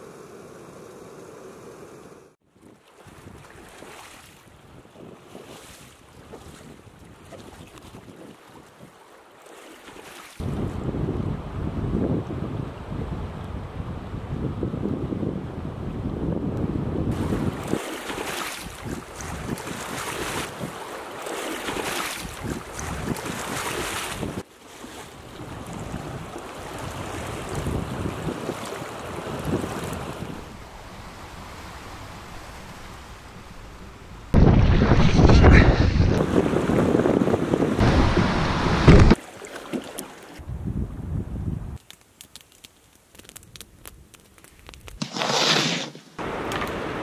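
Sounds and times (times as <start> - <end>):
waves splashing against canoe: 2.6 - 10.4, 17.2 - 33.1, 34.4 - 40.4
wind buffeting microphone: 10.4 - 17.8, 25.4 - 39.2, 40.4 - 41.8.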